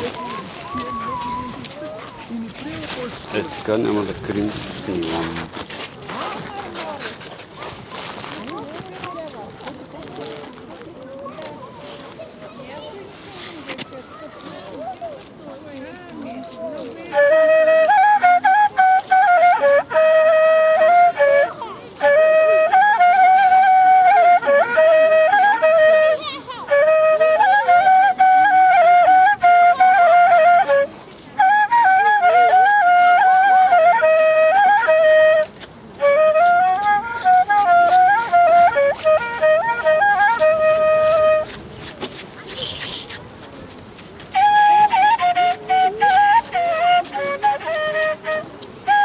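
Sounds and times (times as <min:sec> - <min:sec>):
whistle flute melody with trills: 0:00.0 - 0:02.1, 0:17.1 - 0:41.6, 0:44.3 - 0:49.0.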